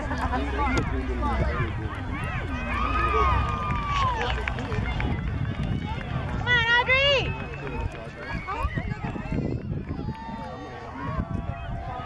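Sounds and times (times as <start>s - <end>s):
spectators shouting: 0.0s - 12.0s.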